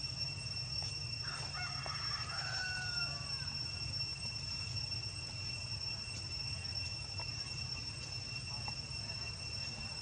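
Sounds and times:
insects droning: 0.0s - 10.0s
rooster crowing: 1.2s - 3.7s.

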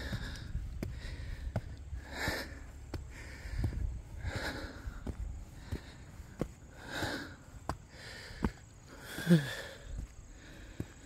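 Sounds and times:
footfalls on steps: 0.0s - 11.0s
person breathing heavily: 0.0s - 11.0s.

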